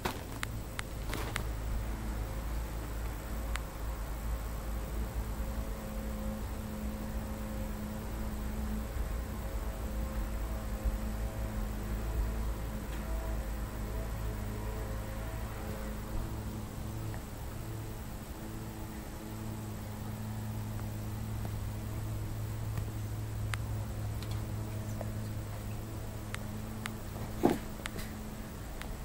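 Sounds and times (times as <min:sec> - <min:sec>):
motor or fan humming: 0:00.0 - 0:29.0.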